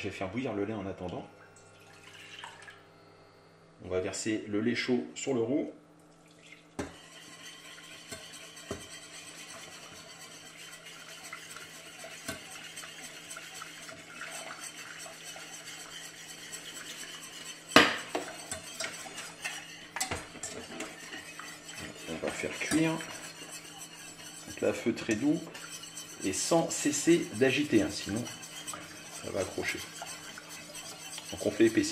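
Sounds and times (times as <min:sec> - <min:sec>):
metal pans clanking: 0:06.8 - 0:31.9
whisk scraping a saucepan: 0:06.8 - 0:31.9.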